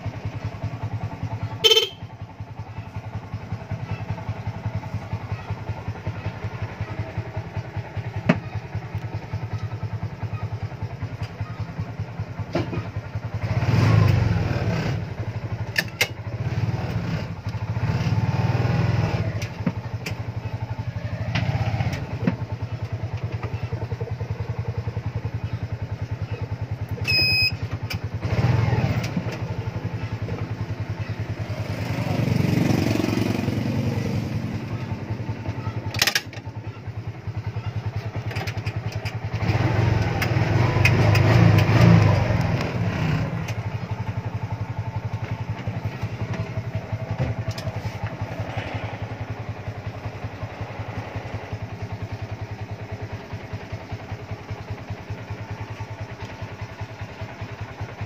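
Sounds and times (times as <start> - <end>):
auto-rickshaw engine idling and revving: 0.0 - 58.0
short high electronic beep: 27.0 - 27.6.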